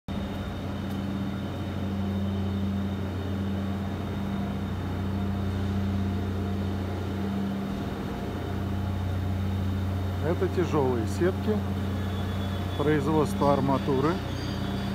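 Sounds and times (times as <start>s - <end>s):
faint high whine: 0.1s - 14.9s
low electrical machinery hum: 0.1s - 14.9s.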